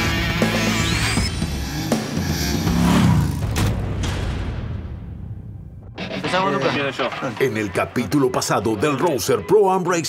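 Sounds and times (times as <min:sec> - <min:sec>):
motorcycle engine revving: 0:00.0 - 0:03.7.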